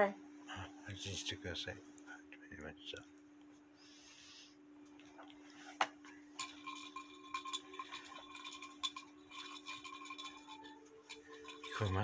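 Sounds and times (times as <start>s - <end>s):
low steady hum: 0.0s - 12.0s
glass clinking: 6.4s - 12.0s.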